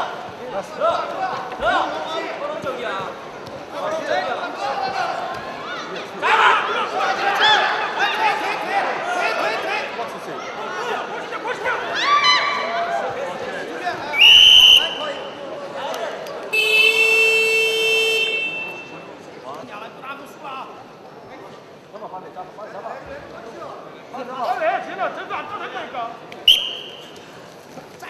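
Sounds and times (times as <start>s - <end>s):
crowd voices and shouts: 0.0s - 28.0s
referee's whistle: 14.2s - 15.3s, 16.6s - 19.0s, 26.4s - 27.2s.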